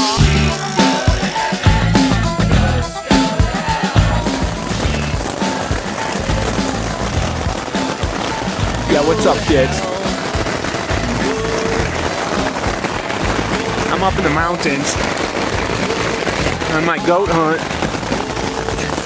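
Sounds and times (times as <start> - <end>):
background music: 0.0 - 19.0
hail pelting tent fabric: 0.0 - 19.0.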